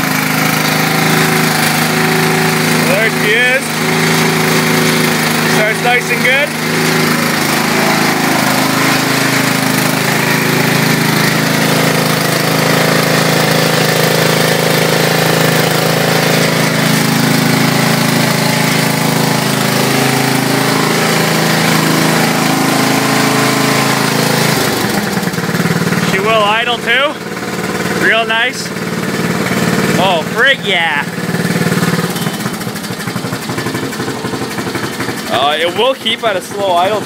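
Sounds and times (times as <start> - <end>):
lawn tractor engine idling: 0.0 - 37.0.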